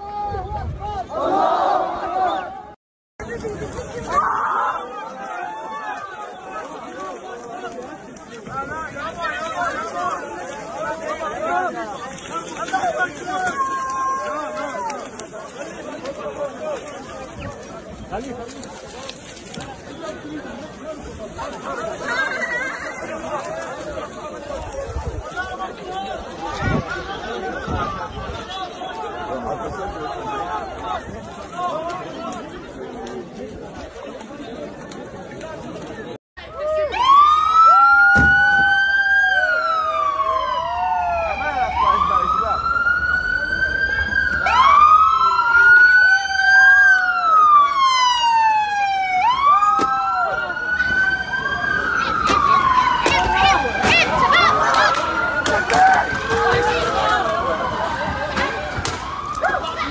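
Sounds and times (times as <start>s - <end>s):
crowd talking and shouting: 0.0s - 59.9s
police sirens wailing: 36.7s - 59.9s.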